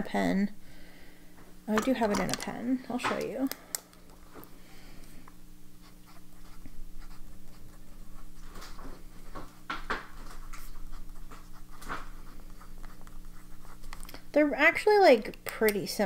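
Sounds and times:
pen nib scratching paper: 0:05.8 - 0:08.5, 0:10.6 - 0:14.1.

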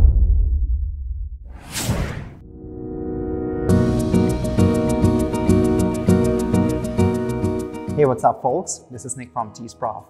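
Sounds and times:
whoosh: 0:01.5 - 0:02.6.

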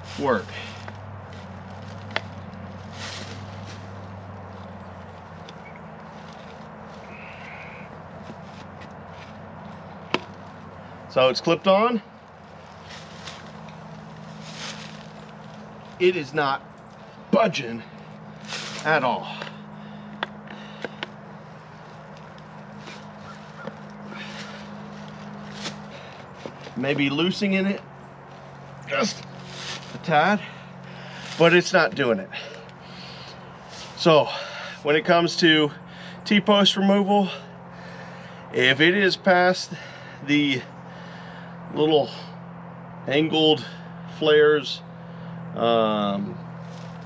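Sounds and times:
rustling: 0:00.0 - 0:10.8, 0:12.2 - 0:16.1, 0:18.0 - 0:19.0, 0:20.6 - 0:27.0, 0:28.3 - 0:30.1
steady low hum: 0:00.0 - 0:36.4
tractor diesel engine idling: 0:00.0 - 0:42.5.

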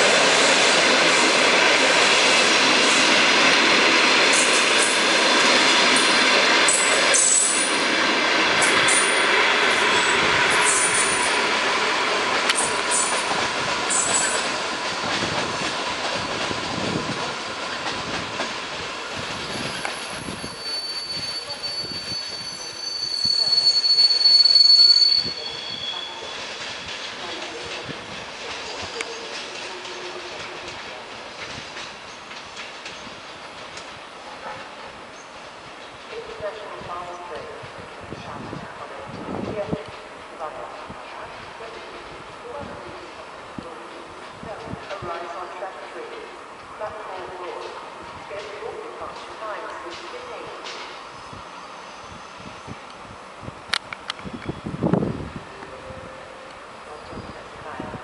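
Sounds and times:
train rolling slowly: 0:00.0 - 0:58.0
train wheels clattering: 0:12.2 - 0:22.6, 0:25.5 - 0:36.7
high steady wheel squeal: 0:19.3 - 0:26.5, 0:51.1 - 0:53.0.

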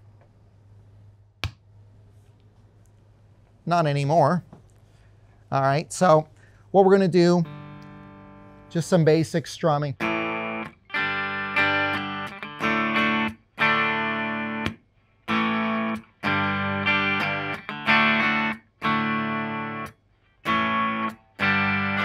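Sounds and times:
electric guitar chords strummed: 0:07.1 - 0:22.0.

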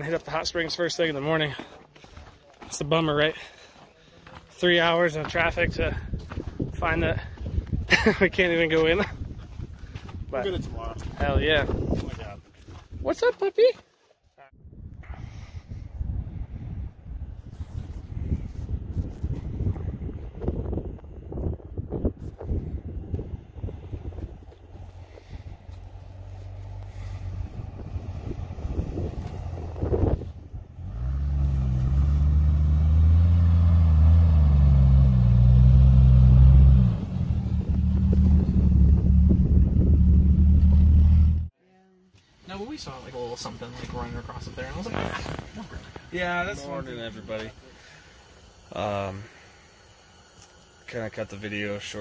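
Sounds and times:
car engine driving through snow: 0:23.9 - 0:41.5.

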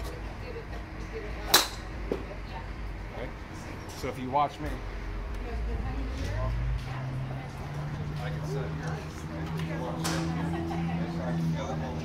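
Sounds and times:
golf club striking ball: 0:01.5 - 0:02.2.

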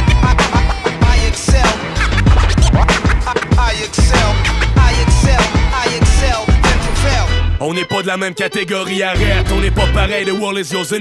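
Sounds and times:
record scratching on turntable: 0:00.0 - 0:07.2
hip-hop beat: 0:00.0 - 0:11.0.

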